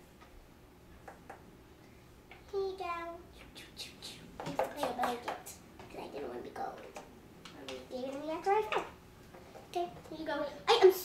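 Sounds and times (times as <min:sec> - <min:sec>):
child talking: 0:02.5 - 0:03.4, 0:04.5 - 0:09.0, 0:09.7 - 0:11.0
plastic tubs clicking and knocking: 0:04.4 - 0:05.9.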